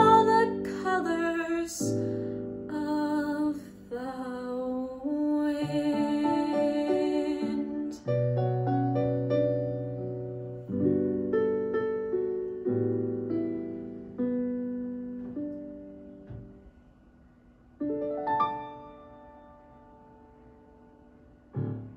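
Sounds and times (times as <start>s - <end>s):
piano chords and notes: 0.0s - 21.9s.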